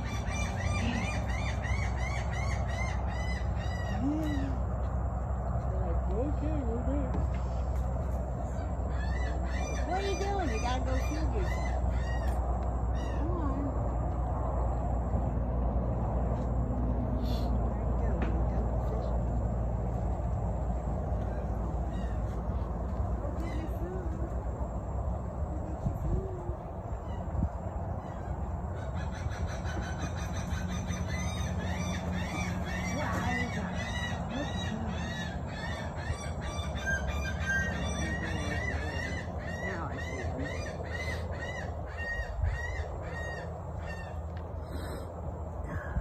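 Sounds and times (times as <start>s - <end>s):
steady low rumble: 0.0s - 46.0s.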